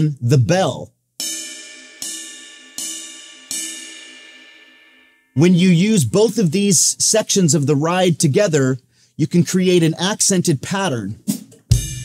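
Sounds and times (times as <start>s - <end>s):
ride cymbal bell struck: 1.2s - 5.4s.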